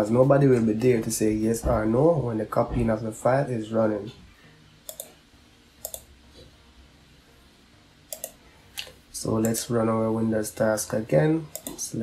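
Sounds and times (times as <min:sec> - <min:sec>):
computer mouse clicks: 0:04.9 - 0:05.2, 0:05.8 - 0:06.1, 0:08.1 - 0:09.6, 0:11.5 - 0:11.8.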